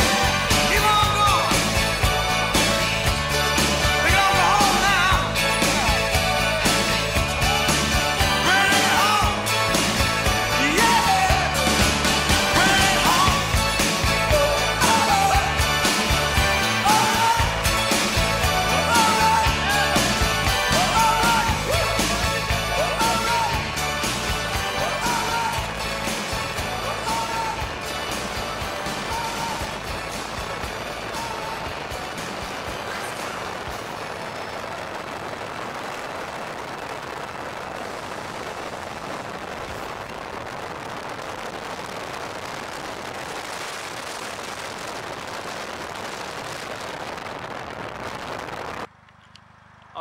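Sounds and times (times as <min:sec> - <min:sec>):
music with steady beat: 0:00.0 - 0:33.4
wind and road noise: 0:29.6 - 0:50.0.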